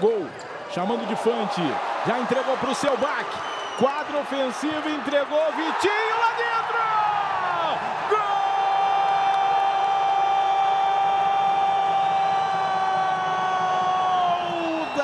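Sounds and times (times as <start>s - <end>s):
commentator's long goal shout: 4.4s - 10.2s.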